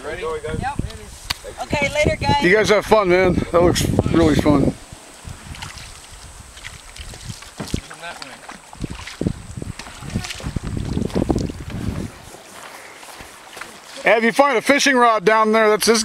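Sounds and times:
paddles splashing in water: 4.1s - 14.7s.

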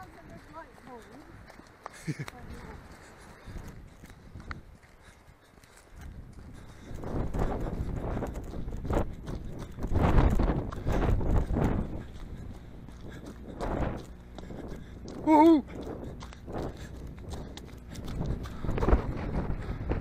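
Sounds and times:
running footsteps on gravel: 0.0s - 20.0s
wind buffeting microphone: 0.0s - 20.0s.

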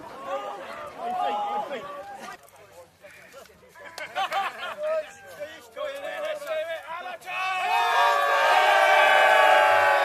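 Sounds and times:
men shouting victory cheer: 7.2s - 10.0s.

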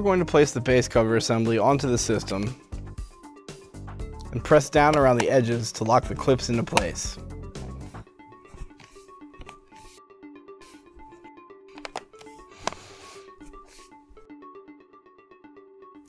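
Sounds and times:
soft plucked-string music: 4.0s - 9.8s
plastic clips snapping into place: 11.8s - 12.8s.

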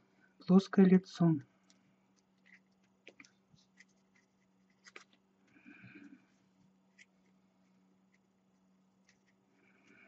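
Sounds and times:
faint low hum: 0.0s - 10.0s
aluminium foil crinkling: 2.1s - 5.2s.

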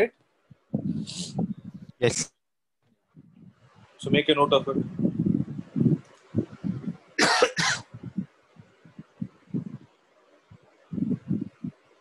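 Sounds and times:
person coughing: 7.2s - 7.9s.

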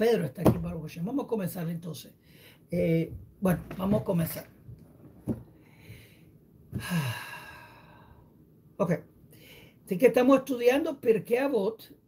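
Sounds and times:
man sighing: 6.7s - 8.2s.

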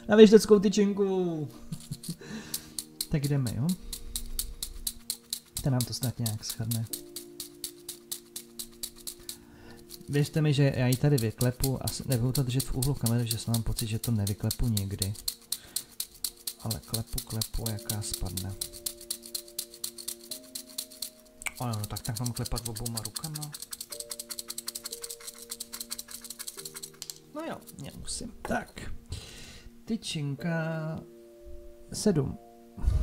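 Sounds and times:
background music: 0.0s - 33.0s
wooden sticks clattering in cylinder: 1.8s - 28.1s
background music chord: 26.6s - 33.0s.

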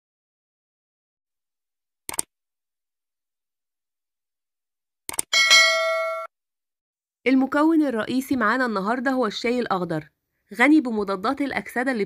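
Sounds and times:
quick clicks: 2.1s - 2.3s, 5.1s - 5.3s
bright bell chime: 5.4s - 6.3s.

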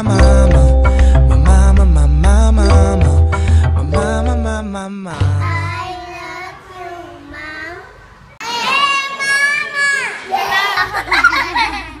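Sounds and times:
person singing: 0.0s - 5.9s
child singing high: 5.4s - 10.8s.

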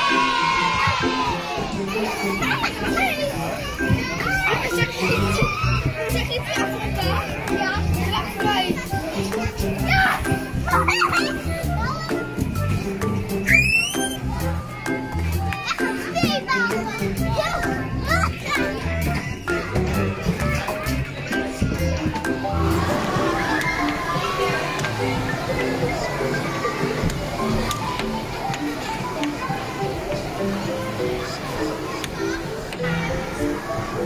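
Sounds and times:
children playing and calling out: 0.0s - 34.0s
child squealing: 13.5s - 14.2s.

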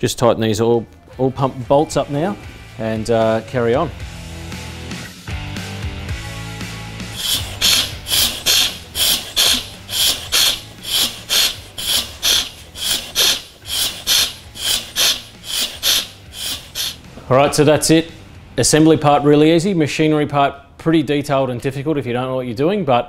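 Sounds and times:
ratchet wrench clicking: 7.2s - 17.0s.

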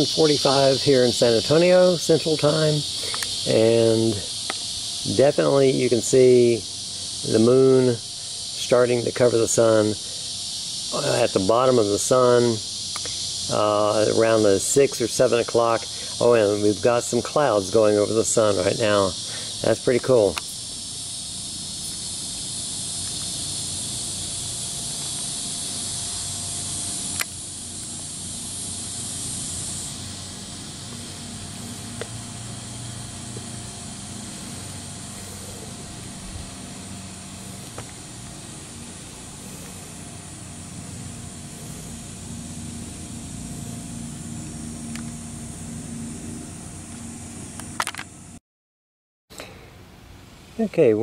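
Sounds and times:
high-pitched insect drone: 0.0s - 48.4s.

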